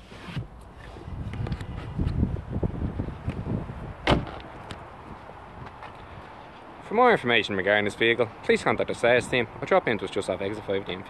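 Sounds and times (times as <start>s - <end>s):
car door slamming: 4.0s - 4.8s.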